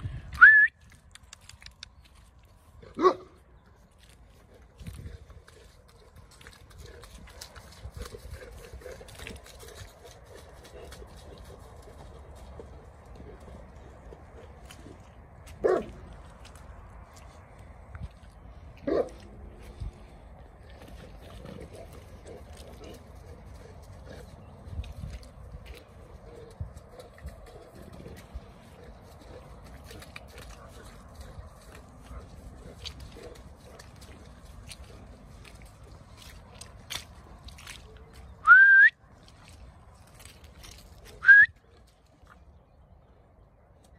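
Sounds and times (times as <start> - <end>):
person whistling rising note: 0.4 - 0.8, 38.4 - 39.0
dog barking: 3.0 - 3.4, 15.6 - 16.0, 18.9 - 19.2.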